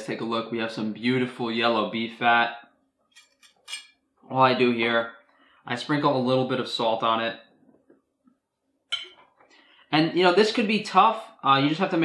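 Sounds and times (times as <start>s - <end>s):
knife clinking on ceramic plate: 3.1s - 4.0s, 8.9s - 9.2s.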